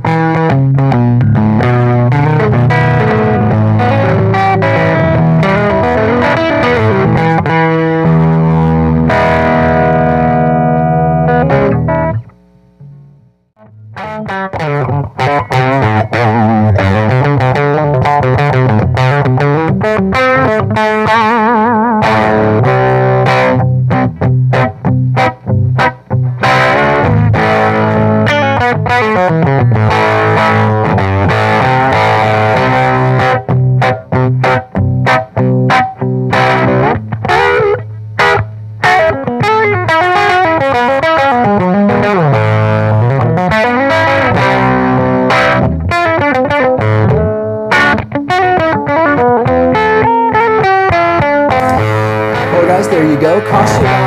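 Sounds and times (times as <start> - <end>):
electric guitar through small radio: 0.0 - 54.0.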